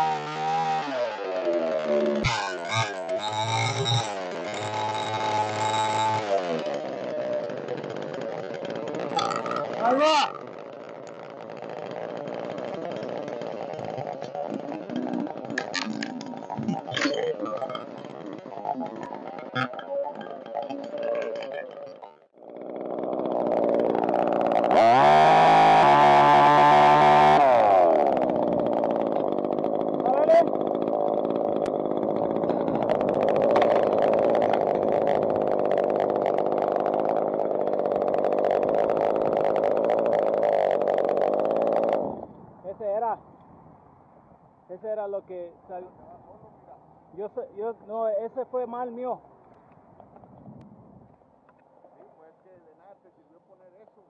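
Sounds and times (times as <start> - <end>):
chainsaw revving: 0.0 - 42.4.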